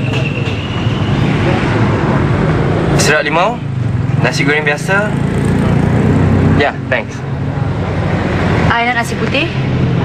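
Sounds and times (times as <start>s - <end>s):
road traffic with engine drone: 0.0s - 10.0s.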